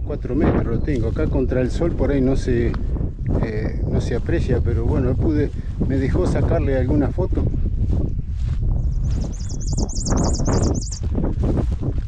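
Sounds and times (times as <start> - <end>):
wind rumbling on microphone: 0.0 - 12.0
bird singing high wavering notes: 9.2 - 11.0.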